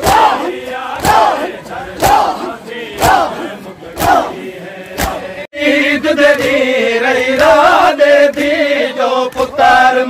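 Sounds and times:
crowd shouting a chant: 0:00.0 - 0:10.0
voices singing a lament: 0:00.0 - 0:10.0.

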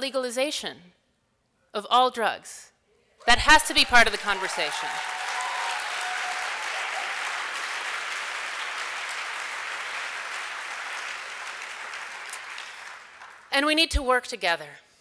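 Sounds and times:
large audience applauding: 0:03.4 - 0:13.5.

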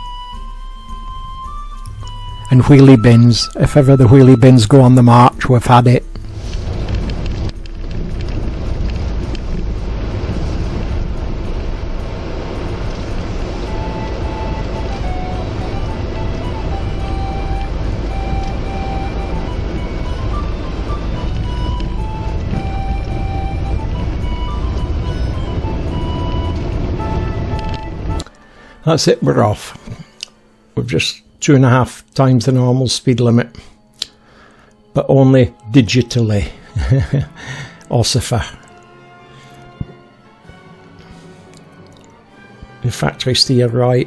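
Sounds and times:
faint music: 0:00.0 - 0:44.0
car interior road rumble: 0:06.2 - 0:28.2.

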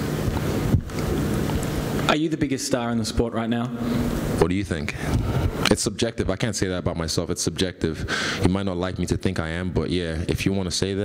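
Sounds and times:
air rushing on a microphone: 0:03.7 - 0:05.7.

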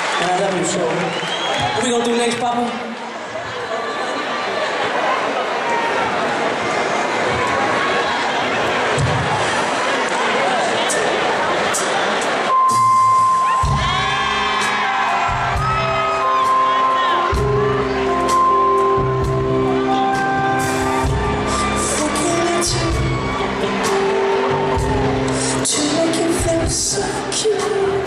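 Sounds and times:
bass line: 0:12.5 - 0:27.5
electric keyboard chords: 0:12.5 - 0:28.0
voices whooping: 0:12.7 - 0:26.0.

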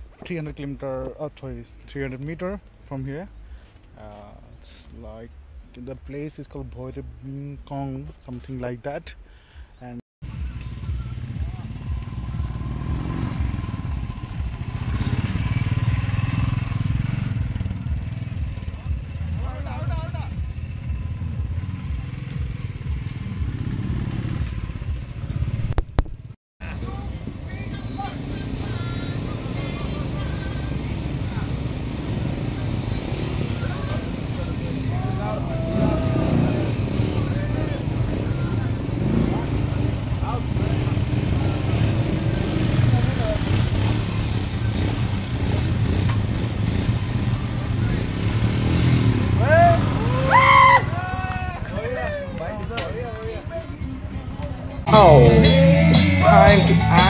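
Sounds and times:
motorcycle engines rumbling: 0:00.0 - 0:57.0
background voices: 0:26.6 - 0:43.8, 0:53.2 - 0:57.0.

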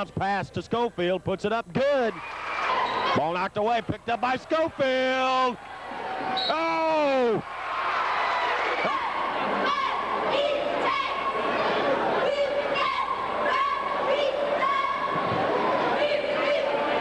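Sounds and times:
crowd noise in gym: 0:00.0 - 0:17.0
cheerleaders chanting in unison: 0:08.0 - 0:17.0.

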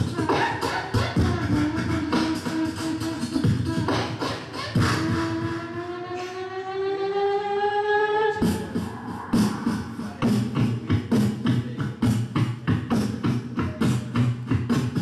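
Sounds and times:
beatbox kick and snare: 0:00.0 - 0:06.5, 0:08.3 - 0:15.0
vocal melody: 0:00.0 - 0:15.0
held note rising in pitch: 0:04.5 - 0:10.2.

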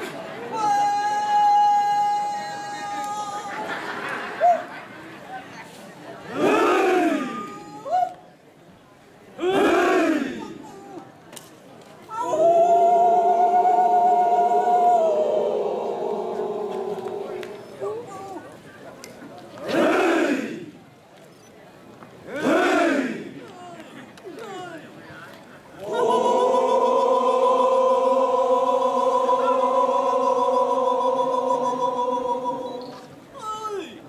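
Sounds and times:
men chorused cry in unison: 0:06.3 - 0:07.7, 0:09.4 - 0:10.8, 0:12.1 - 0:17.6, 0:19.7 - 0:20.7, 0:22.3 - 0:23.4, 0:25.8 - 0:32.8
single voices calling: 0:22.3 - 0:34.0
men chanting in unison: 0:25.9 - 0:32.7.

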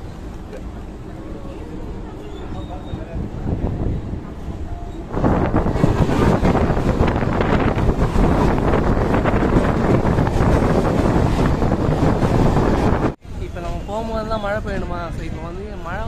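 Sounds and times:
passing train: 0:00.0 - 0:16.0
train rumbling and rattling: 0:00.0 - 0:16.0
wind rushing over microphone: 0:01.9 - 0:13.2.

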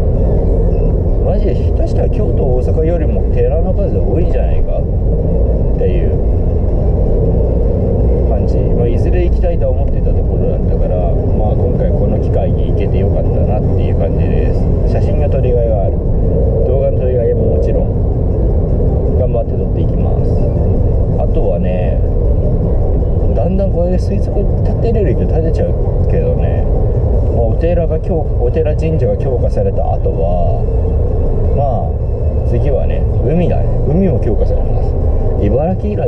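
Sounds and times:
car engine and road rumble: 0:00.0 - 0:36.0
man talking: 0:01.2 - 0:04.9, 0:05.6 - 0:06.4, 0:08.1 - 0:18.0, 0:19.0 - 0:22.2, 0:23.2 - 0:36.0.

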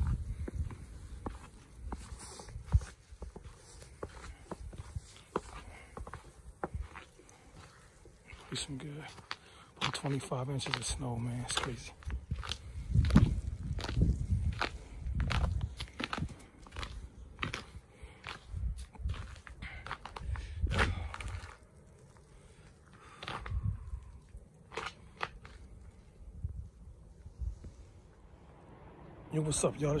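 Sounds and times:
footsteps crunching on snow: 0:00.0 - 0:26.1
low microphone rumble: 0:12.1 - 0:16.4.

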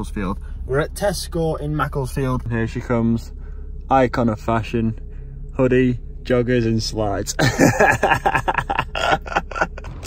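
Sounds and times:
person laughing in breathy bursts: 0:07.4 - 0:10.0.

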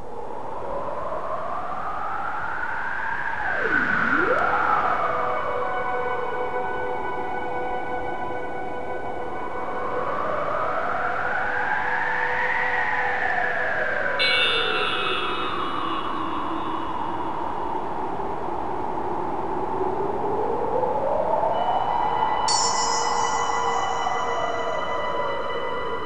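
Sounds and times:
sustained synth drone: 0:03.3 - 0:08.8, 0:22.5 - 0:26.0
synth tone sweeping up and down: 0:03.4 - 0:05.8
bright chiming high notes: 0:22.5 - 0:26.0.

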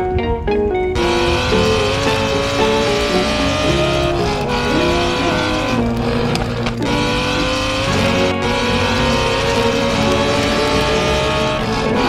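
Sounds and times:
race car engine revving: 0:00.7 - 0:12.0.

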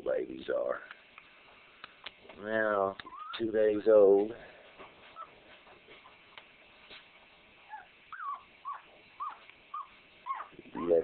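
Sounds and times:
puppies squeaking: 0:03.0 - 0:03.5, 0:05.1 - 0:06.2, 0:07.6 - 0:11.0.

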